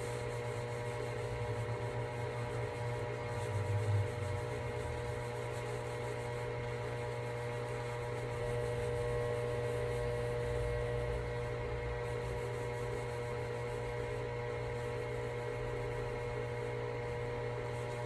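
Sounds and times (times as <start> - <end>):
electrical hum: 0.0 - 18.0.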